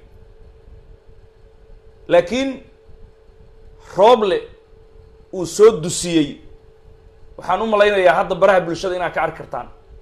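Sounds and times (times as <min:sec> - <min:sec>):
faint steady hum: 0:00.0 - 0:10.0
man talking: 0:02.1 - 0:02.7, 0:03.8 - 0:04.6, 0:05.3 - 0:06.4, 0:07.4 - 0:09.8.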